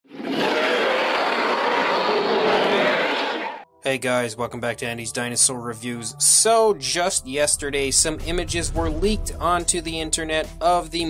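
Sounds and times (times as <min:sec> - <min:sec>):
dinosaur roar: 0:00.1 - 0:03.6.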